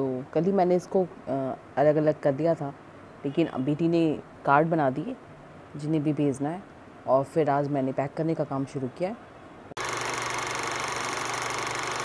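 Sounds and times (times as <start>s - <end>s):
film projector whirring: 9.8s - 12.0s.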